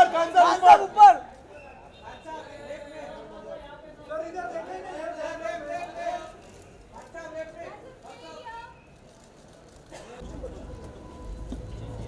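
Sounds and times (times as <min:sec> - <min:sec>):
chatter of voices: 0:00.0 - 0:11.3.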